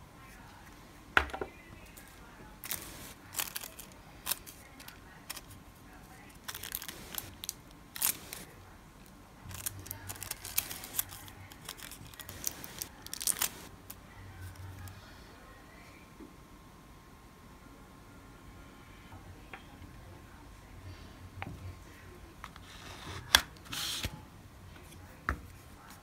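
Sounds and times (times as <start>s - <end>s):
foil sheet crinkling: 2.6s - 5.6s, 6.3s - 8.5s, 9.5s - 13.7s.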